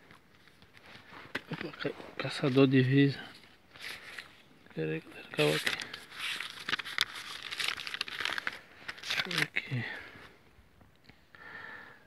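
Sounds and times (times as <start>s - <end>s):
dry leaves and twigs crackling: 0.1s - 10.0s.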